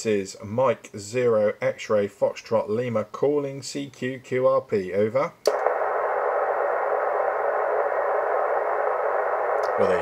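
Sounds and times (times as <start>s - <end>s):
radio band noise hiss: 5.5s - 10.0s.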